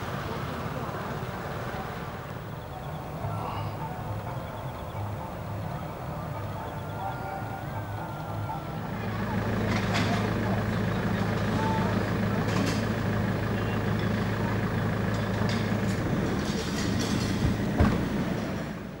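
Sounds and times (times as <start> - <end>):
engine idling: 0.0 - 19.0
faint voices: 0.0 - 19.0.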